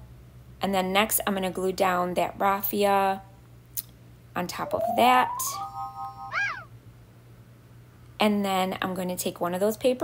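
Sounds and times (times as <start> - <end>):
held electronic tone: 4.6 - 6.7
cat meow: 6.3 - 6.7.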